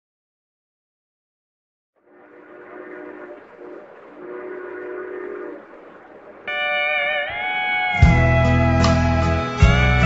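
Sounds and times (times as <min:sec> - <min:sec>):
distant train horn: 0:02.1 - 0:08.0
train rumble: 0:02.1 - 0:09.8
steel guitar chord: 0:06.5 - 0:10.0.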